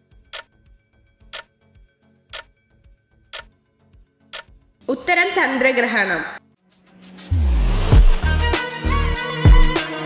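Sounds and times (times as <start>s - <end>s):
countdown timer ticking: 0.2s - 0.5s, 2.3s - 2.6s, 3.3s - 3.5s, 4.3s - 5.4s.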